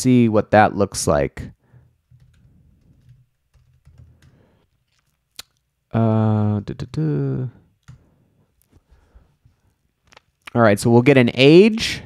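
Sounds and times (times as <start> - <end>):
faint keyboard typing: 1.8 - 5.6, 7.8 - 8.8.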